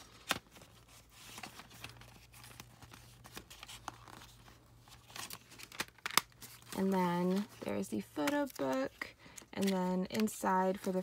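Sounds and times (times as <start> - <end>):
faint rustling and handling: 0.0 - 11.0.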